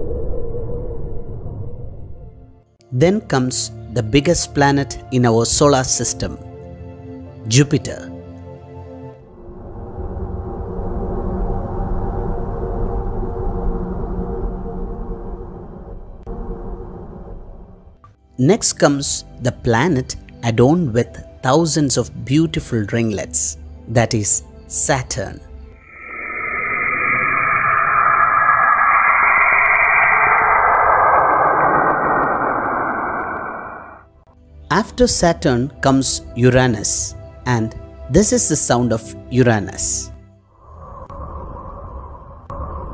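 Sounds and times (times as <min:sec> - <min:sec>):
low noisy drone: 0:25.8 - 0:34.1.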